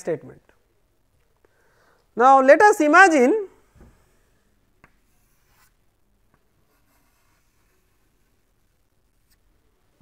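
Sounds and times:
chalk scraping on chalkboard: 5.0s - 5.8s, 6.6s - 8.5s.

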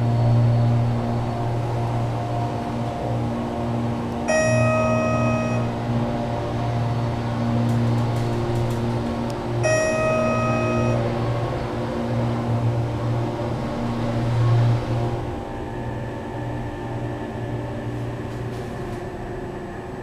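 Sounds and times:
elevator hum: 0.0s - 20.0s
elevator chime: 4.3s - 6.2s, 9.6s - 11.6s.

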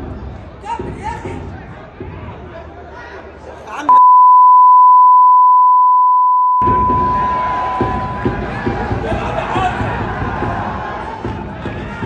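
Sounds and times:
high censor beep: 3.9s - 8.2s
crowd chanting and shouting: 6.6s - 12.0s.

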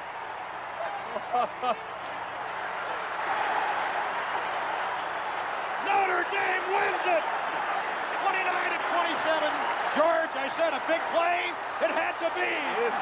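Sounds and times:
stadium crowd cheering: 0.0s - 13.0s.

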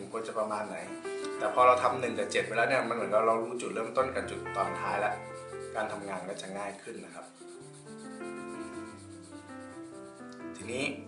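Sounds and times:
soft background music: 0.0s - 11.0s
pencil shading on paper: 0.3s - 11.0s.

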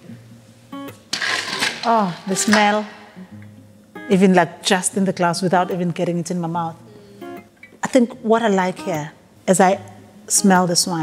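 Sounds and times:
soft guitar music: 0.0s - 11.0s
ice rattling in metal bucket: 1.1s - 3.1s.

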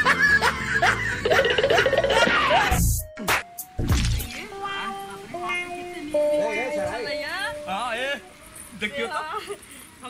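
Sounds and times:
canned laughter: 0.0s - 2.8s
intro jingle: 3.8s - 8.9s.

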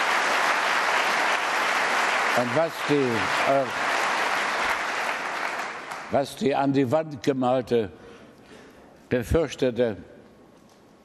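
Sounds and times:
large audience applauding: 0.0s - 6.3s.

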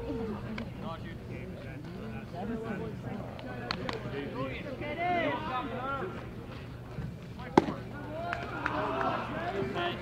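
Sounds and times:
people talking: 7.4s - 10.0s.

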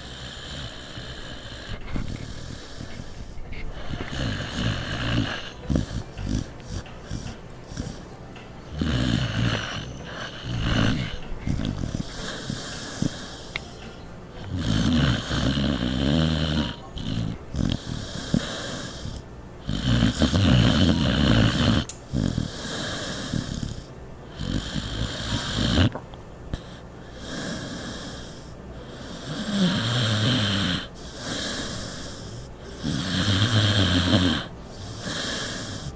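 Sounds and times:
dog snoring loudly: 0.0s - 13.6s, 14.3s - 26.0s, 26.6s - 35.9s.

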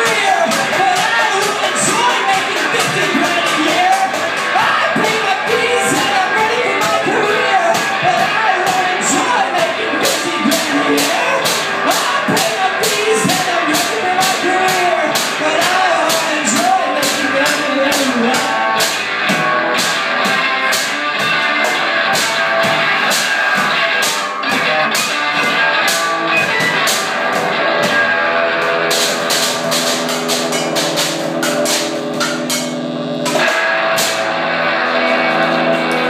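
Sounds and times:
fast drumming on metal cans: 0.0s - 27.8s
electric guitar chords: 0.0s - 36.0s.

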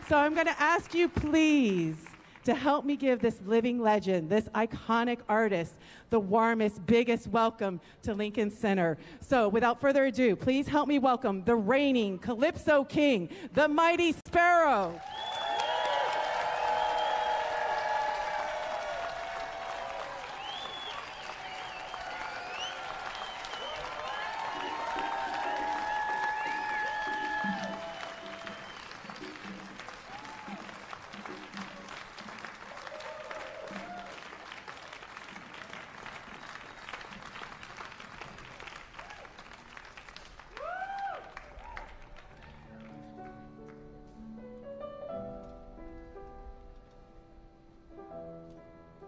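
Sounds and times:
audience applauding and cheering: 0.0s - 2.4s, 14.9s - 43.8s
whoops and shouts: 15.0s - 28.9s, 30.1s - 30.8s, 32.7s - 34.2s, 40.5s - 42.0s.

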